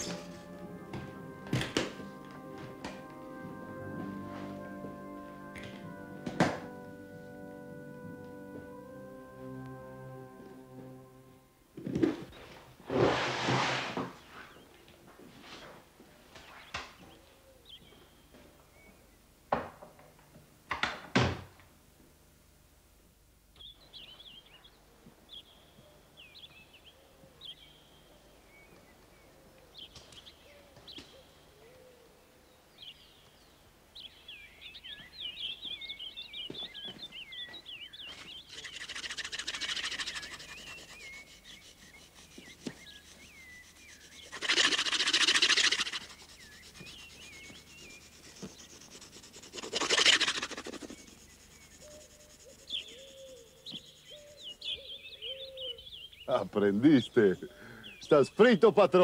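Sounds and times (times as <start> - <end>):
small birds chirping: 23.6 - 59.0.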